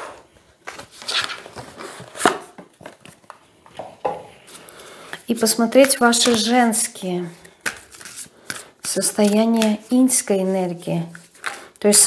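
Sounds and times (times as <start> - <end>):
card deck rustling: 7.4 - 11.6.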